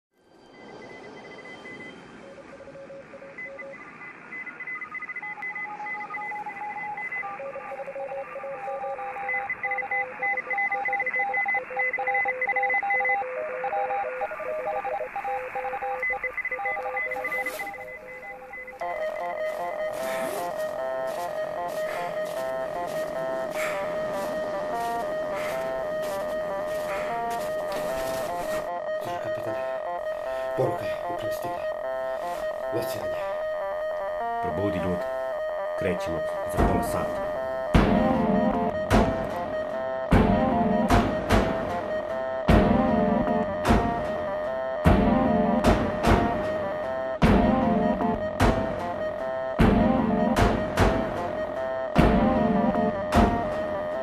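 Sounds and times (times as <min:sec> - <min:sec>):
steady beeping tones: 0:00.3 - 0:54.0
radio hiss: 0:13.3 - 0:33.6, 0:34.3 - 0:35.2, 0:35.8 - 0:37.4.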